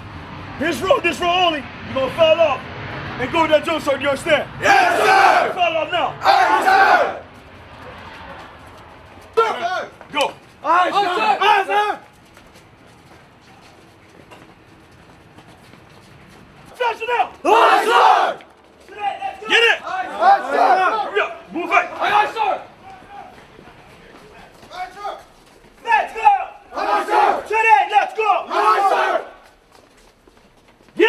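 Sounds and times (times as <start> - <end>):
group yelling together: 4.6 - 7.2, 9.4 - 12.0, 16.8 - 23.4, 25.8 - 29.4
instructor barking orders: 4.6 - 7.2, 9.4 - 12.0, 16.8 - 23.3, 24.4 - 29.3.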